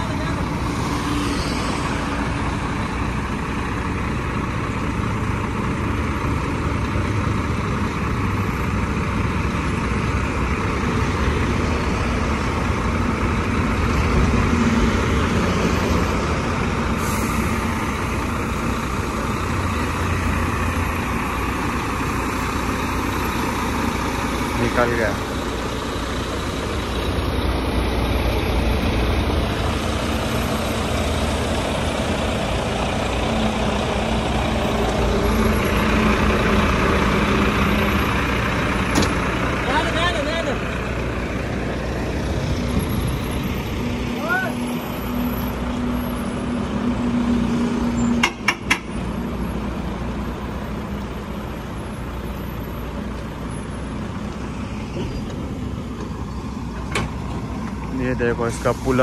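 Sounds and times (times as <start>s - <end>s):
diesel truck engine rumbling: 0.0s - 59.0s.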